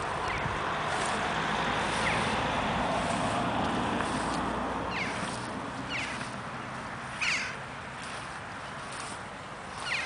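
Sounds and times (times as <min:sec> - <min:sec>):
bird calling: 0:00.0 - 0:01.1, 0:01.8 - 0:02.4, 0:04.9 - 0:06.4, 0:07.1 - 0:10.0.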